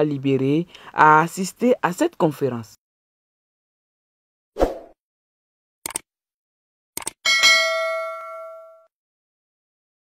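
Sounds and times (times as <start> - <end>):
bell-like notification ding: 7.3 - 8.9.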